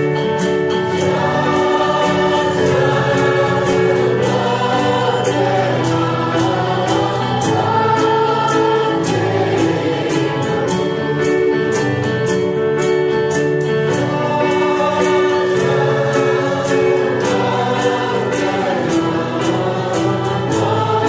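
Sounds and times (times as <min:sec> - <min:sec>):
choir singing with instrumental backing: 0:00.0 - 0:21.0.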